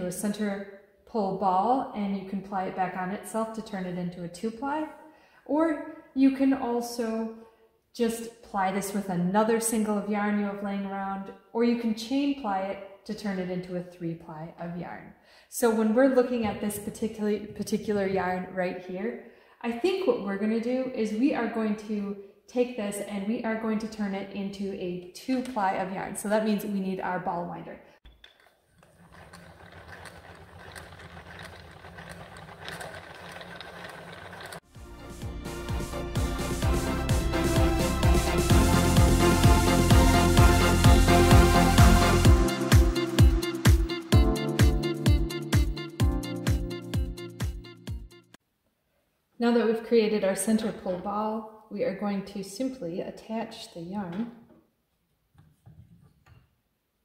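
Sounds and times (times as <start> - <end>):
yarn winder gears whirring: 28.2 - 34.7.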